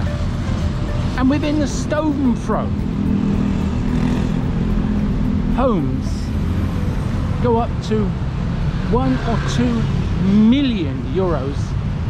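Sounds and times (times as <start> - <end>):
car and motorcycle engines in traffic: 0.0 - 12.0.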